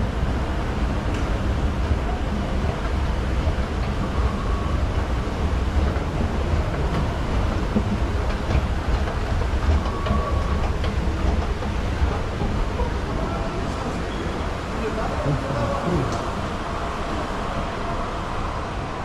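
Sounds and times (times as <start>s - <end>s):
escalator rumbling and rattling: 0.0s - 17.1s.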